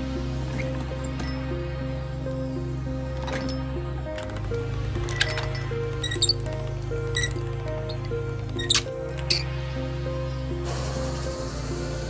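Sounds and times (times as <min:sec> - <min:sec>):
background music: 0:00.0 - 0:12.0
torch flame hissing: 0:10.6 - 0:12.0.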